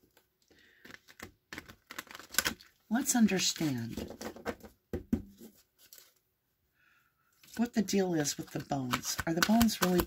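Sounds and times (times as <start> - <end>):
cards being shuffled: 0.1 - 2.6, 7.4 - 10.0.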